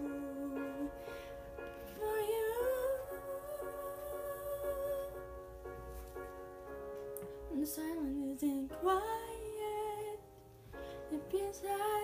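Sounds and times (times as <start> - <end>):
backing track soft chords: 0.0 - 12.0.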